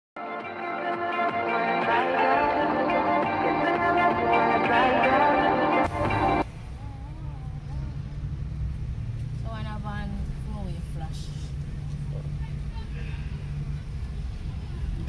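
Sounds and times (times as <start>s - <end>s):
car engine rumble from inside cabin: 6.0s - 15.0s.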